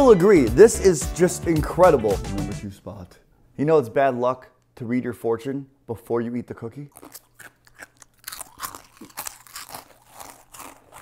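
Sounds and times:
fortune cookie crunching: 6.8s - 11.0s.

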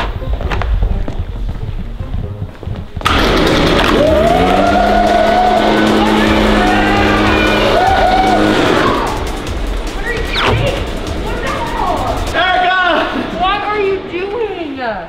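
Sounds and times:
background music: 0.0s - 15.0s
leaf blower running: 3.0s - 9.8s.

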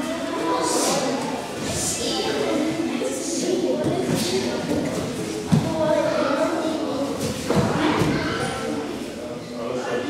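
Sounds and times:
children's voices echoing: 0.0s - 9.0s.

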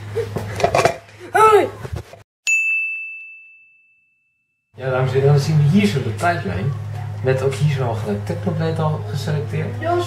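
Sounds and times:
bright electronic ding: 2.5s - 4.6s.

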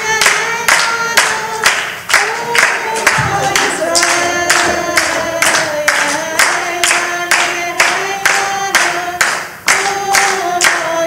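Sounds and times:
congregation singing: 0.0s - 11.0s
people clapping in time: 0.0s - 11.0s.

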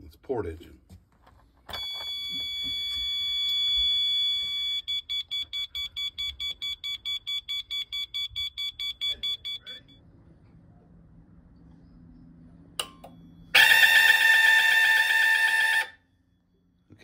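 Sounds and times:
high-pitched electronic warning beep: 1.7s - 10.0s
fast pulsing beeps: 1.8s - 10.0s.

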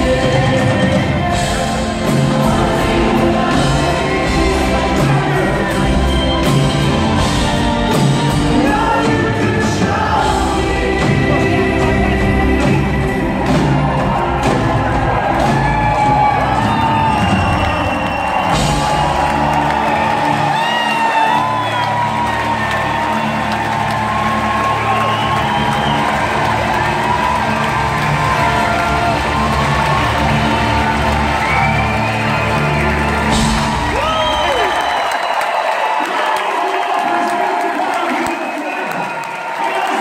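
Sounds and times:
live rock band with orchestra and choir: 0.0s - 40.0s
audience cheering and whooping: 12.6s - 40.0s.

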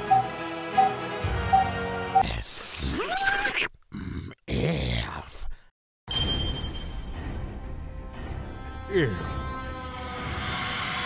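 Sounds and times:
low grunt: 3.2s - 5.0s.

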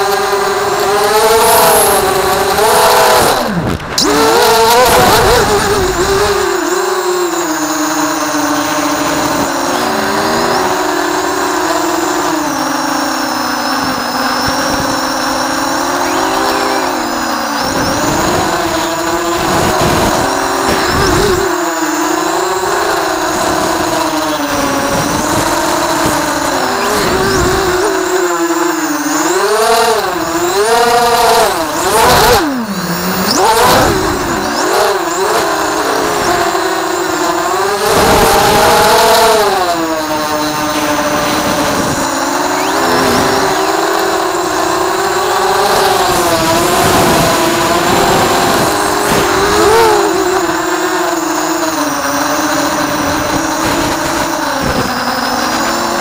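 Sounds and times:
quadcopter motors whining: 0.0s - 56.0s.

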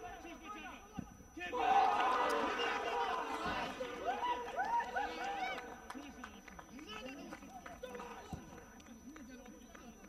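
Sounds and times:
people shouting and calling: 1.4s - 5.7s.

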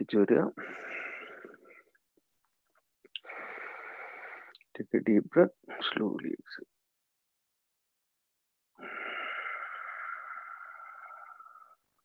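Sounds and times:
man breathing deeply: 0.6s - 1.8s, 3.2s - 4.6s, 8.8s - 11.9s.

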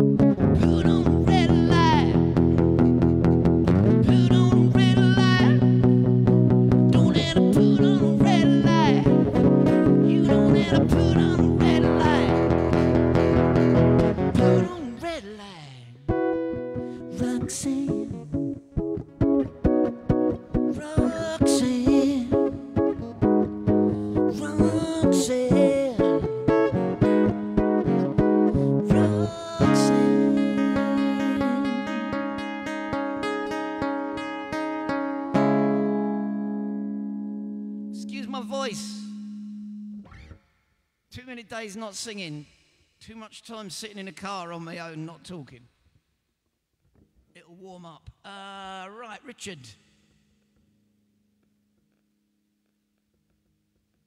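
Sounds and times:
acoustic guitar playing: 0.0s - 15.3s, 16.0s - 41.0s
man singing: 0.4s - 2.3s, 4.0s - 6.0s, 6.8s - 12.7s, 14.4s - 16.1s, 16.9s - 18.5s, 20.7s - 22.8s, 24.1s - 26.4s, 28.6s - 32.4s, 38.0s - 39.4s, 47.4s - 49.9s.

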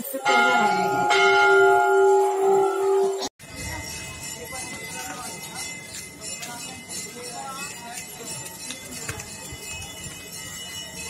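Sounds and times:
temple bell ringing: 0.0s - 11.0s.

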